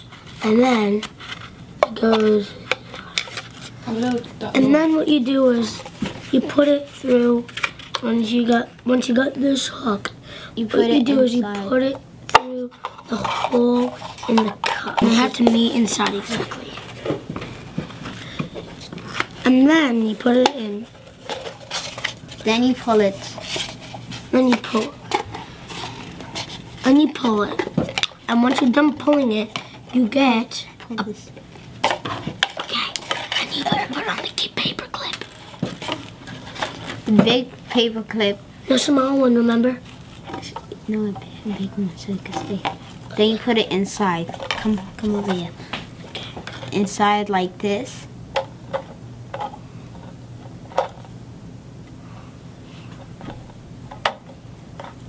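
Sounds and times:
paper cup rustling: 12.7s - 28.8s.

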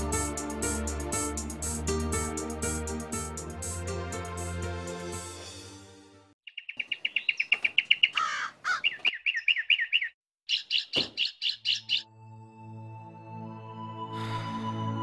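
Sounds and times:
soft music: 0.0s - 6.4s, 12.0s - 15.0s
birds chirping: 6.4s - 12.1s.

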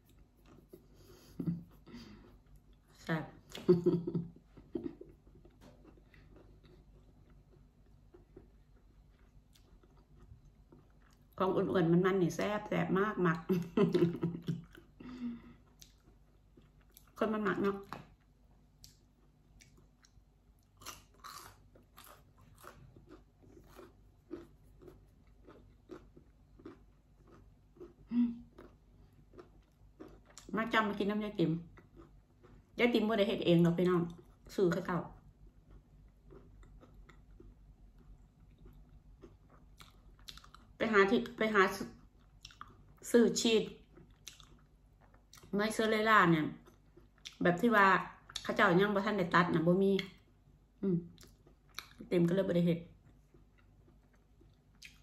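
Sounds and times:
person chewing crunchy food: 0.0s - 2.9s, 4.8s - 11.4s, 14.4s - 17.2s, 17.8s - 30.6s, 31.5s - 32.8s, 34.1s - 40.9s, 41.9s - 43.1s, 43.8s - 45.6s, 51.1s - 52.0s, 52.9s - 55.0s
woman speaking: 3.0s - 4.0s, 11.4s - 14.4s, 17.2s - 18.0s, 30.5s - 31.7s, 32.8s - 35.2s, 40.8s - 41.9s, 43.0s - 43.8s, 45.5s - 46.6s, 47.4s - 50.1s, 50.8s - 51.1s, 52.0s - 52.9s.

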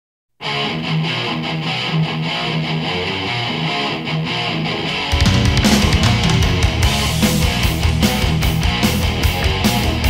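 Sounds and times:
distorted electric guitar riff: 0.4s - 10.0s
heavy metal song: 0.4s - 10.0s.

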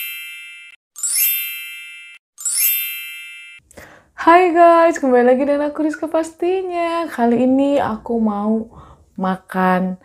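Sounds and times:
bell-like chime dings: 0.0s - 3.6s.

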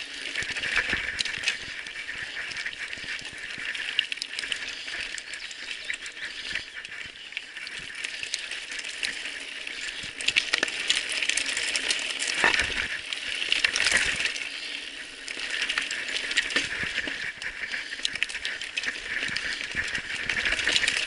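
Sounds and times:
bike tyres crunching on gravel: 7.8s - 21.0s.

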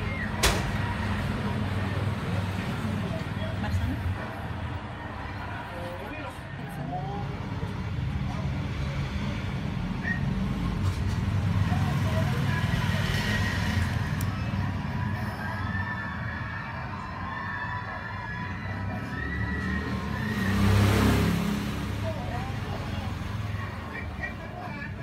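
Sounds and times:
faint distant voices: 0.0s - 25.0s.

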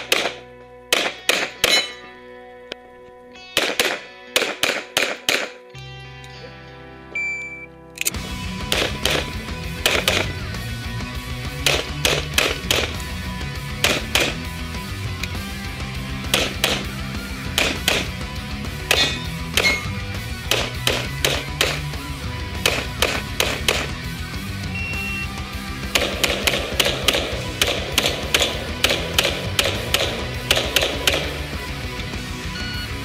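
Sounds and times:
pistol shots: 0.0s - 2.1s, 3.5s - 5.7s, 8.0s - 10.6s, 11.5s - 14.7s, 16.1s - 24.2s, 25.7s - 31.8s
background music with bass line: 0.0s - 33.0s.

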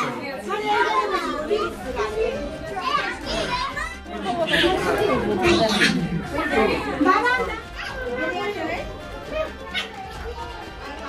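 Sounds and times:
adults chatting: 0.0s - 11.0s
children talking and calling: 0.0s - 11.0s.

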